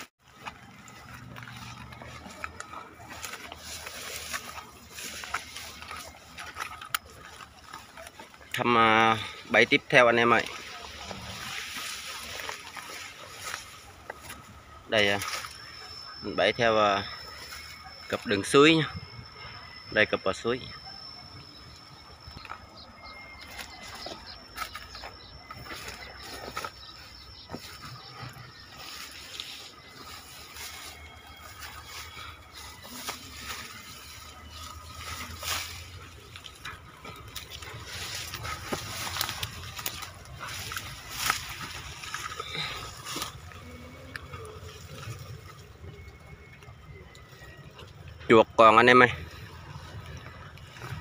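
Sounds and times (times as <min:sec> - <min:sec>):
footsteps through dry grass: 0:00.0 - 0:18.5, 0:21.0 - 0:47.0, 0:47.6 - 0:51.0
twigs crackling and snapping: 0:00.1 - 0:18.4, 0:21.0 - 0:48.3, 0:49.4 - 0:51.0.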